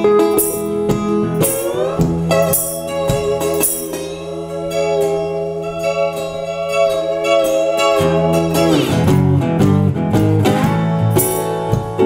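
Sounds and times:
slide guitar: 0:00.0 - 0:12.0.

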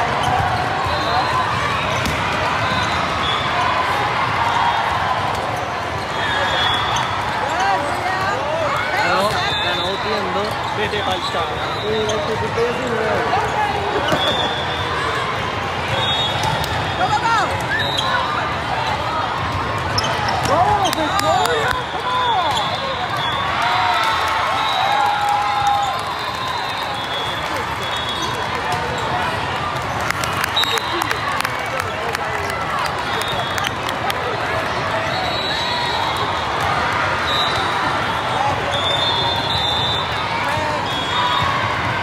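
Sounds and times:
sneakers squeaking on court floor: 0:00.0 - 0:03.6, 0:06.0 - 0:18.4, 0:19.4 - 0:23.4
chatter and shouts: 0:00.0 - 0:42.0
volleyballs struck and bouncing: 0:01.9 - 0:02.6
referee whistle blasts: 0:15.9 - 0:16.5, 0:35.1 - 0:36.2, 0:38.7 - 0:40.2.

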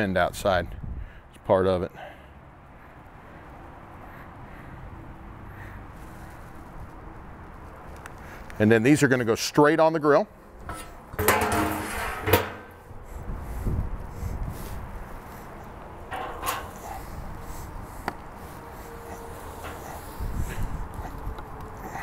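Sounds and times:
wind rumbling on microphone: 0:00.4 - 0:01.2, 0:12.8 - 0:22.0.

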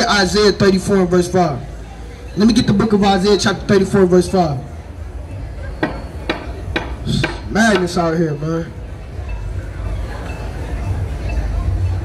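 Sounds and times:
sharp knocks: 0:05.8 - 0:08.0.

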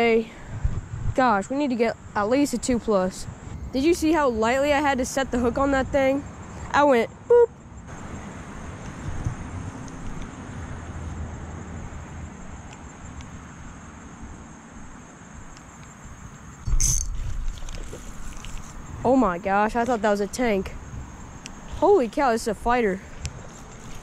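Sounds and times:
outdoor rumble and hiss: 0:00.0 - 0:24.0.

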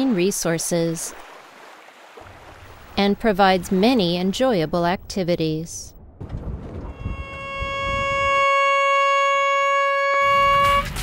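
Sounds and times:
horn long blast: 0:06.9 - 0:11.0.

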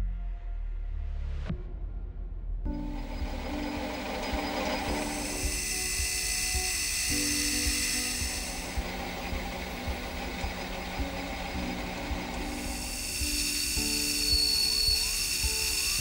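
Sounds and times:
background music: 0:00.0 - 0:16.0
metal lathe turning: 0:02.8 - 0:16.0
high hiss of cutting tool: 0:03.0 - 0:16.0.

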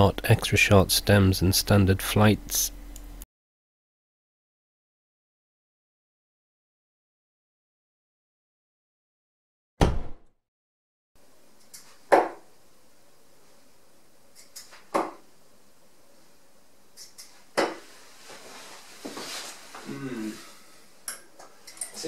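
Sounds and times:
darts hitting dartboard: 0:12.1 - 0:12.4, 0:14.9 - 0:15.2, 0:17.6 - 0:17.8.

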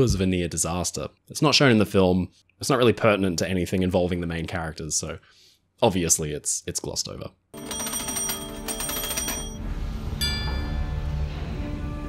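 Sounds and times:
telegraph bells ringing: 0:07.6 - 0:09.6, 0:10.2 - 0:10.9.

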